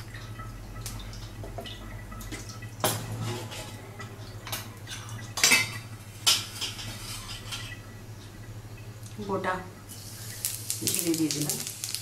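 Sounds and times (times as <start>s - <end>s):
low steady hum: 0.0s - 12.0s
metal kitchenware clinking: 4.4s - 7.8s.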